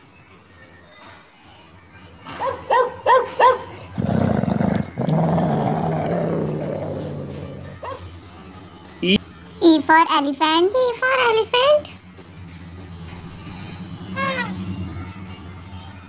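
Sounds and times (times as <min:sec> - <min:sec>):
dog barking: 0:02.4 - 0:03.8, 0:07.8 - 0:08.1
dog low rough vocalization: 0:03.9 - 0:07.8.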